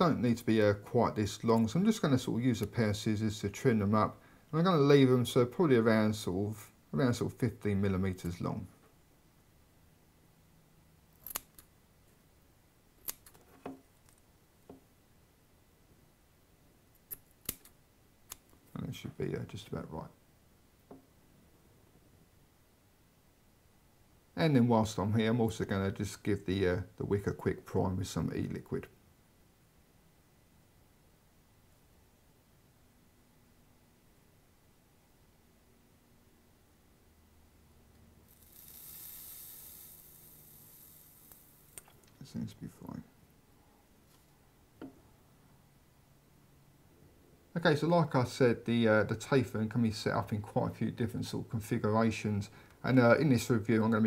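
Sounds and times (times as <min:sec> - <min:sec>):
scissors snipping: 0:11.2 - 0:11.6, 0:13.0 - 0:13.4, 0:17.1 - 0:17.7
faint sizzle of vaporiser coil: 0:38.2 - 0:42.3.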